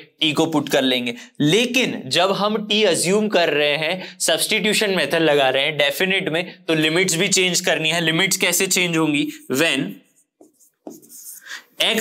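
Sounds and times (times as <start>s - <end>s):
marker scratching on whiteboard: 8.6s - 12.0s.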